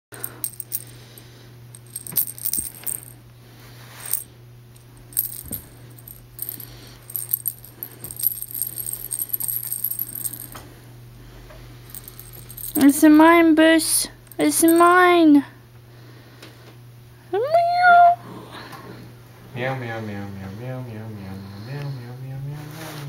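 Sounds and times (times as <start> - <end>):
cat toy jingling and rattling: 0.2 - 1.1, 1.7 - 3.2, 4.0 - 10.6, 11.8 - 13.2, 14.2 - 15.1.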